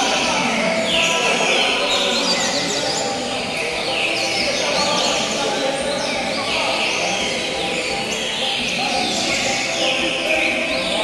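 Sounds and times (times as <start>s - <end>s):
birds singing and chirping: 0.0s - 11.0s.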